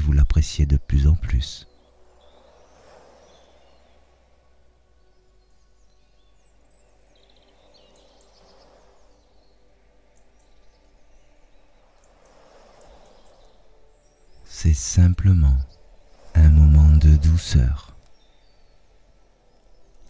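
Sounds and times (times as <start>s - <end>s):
birdsong chirps and trills: 0.0s - 20.0s
ocean waves on shore: 0.4s - 20.0s.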